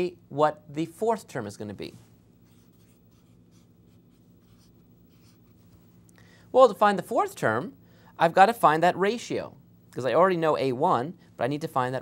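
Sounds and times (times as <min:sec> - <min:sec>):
marker scratching on paper: 0:02.4 - 0:05.6.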